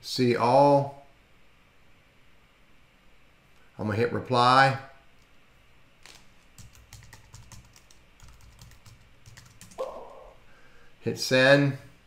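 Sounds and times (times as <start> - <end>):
keyboard keys clicking: 6.0 - 9.8.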